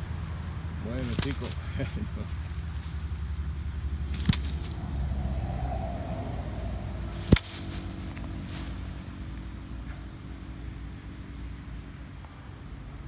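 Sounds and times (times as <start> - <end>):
highway traffic rumble: 0.0 - 13.0.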